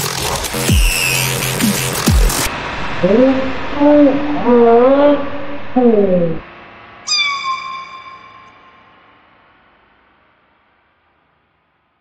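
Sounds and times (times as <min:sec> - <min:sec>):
high-pitched cat meow: 0:07.1 - 0:08.8.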